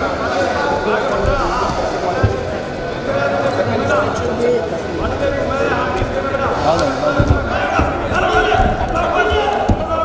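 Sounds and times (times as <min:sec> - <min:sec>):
feet thudding on mat: 0:05.9 - 0:10.0.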